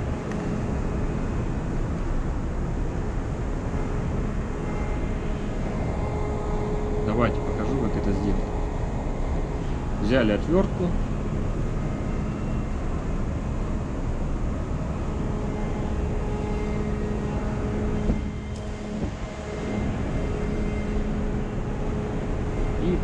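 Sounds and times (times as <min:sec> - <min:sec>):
engine-room machinery drone: 0:00.0 - 0:23.0.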